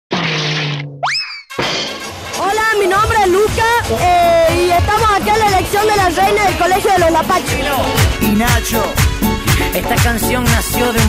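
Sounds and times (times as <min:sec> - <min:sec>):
rising boing glide: 0:00.1 - 0:01.9
loud hit effect: 0:00.1 - 0:02.4
music: 0:01.5 - 0:11.0.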